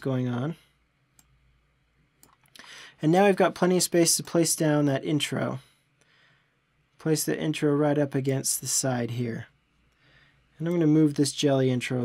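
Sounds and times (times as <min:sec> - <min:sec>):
short intake of breath: 0:02.6 - 0:03.0.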